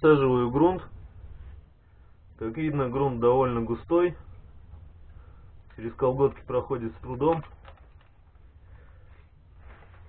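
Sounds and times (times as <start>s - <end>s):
faint low rumble and hiss: 0.0s - 10.0s.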